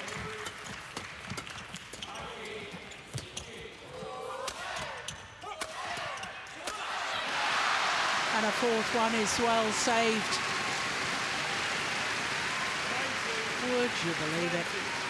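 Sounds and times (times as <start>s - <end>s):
crowd cheering and applause: 6.6s - 15.0s.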